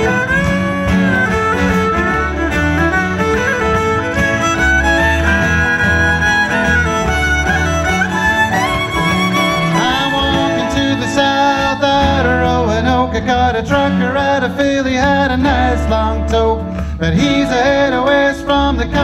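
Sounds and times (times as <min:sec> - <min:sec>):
fiddle melody: 0:00.0 - 0:14.8
banjo: 0:00.0 - 0:19.0
strummed acoustic guitar: 0:00.0 - 0:19.0.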